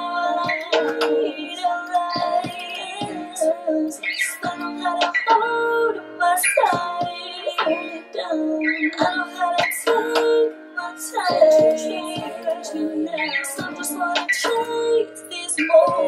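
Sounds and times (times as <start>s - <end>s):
woman singing: 0.0s - 16.0s.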